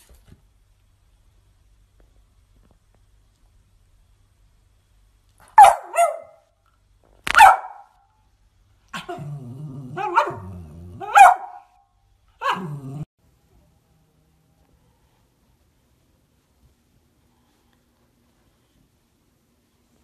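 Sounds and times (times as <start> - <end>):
dog barking: 5.4 - 6.5, 7.3 - 8.0, 10.0 - 11.8, 12.4 - 13.0
dog growling: 8.9 - 11.2, 12.4 - 13.1.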